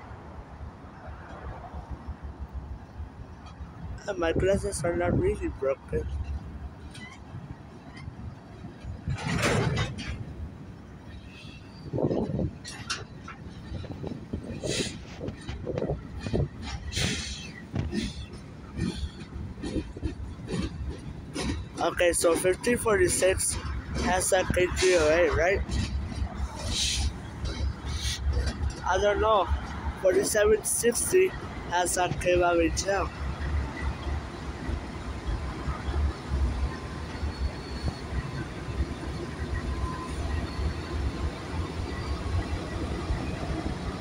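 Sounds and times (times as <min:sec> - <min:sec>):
freight train wheels rumbling on rail: 0:00.0 - 0:44.0.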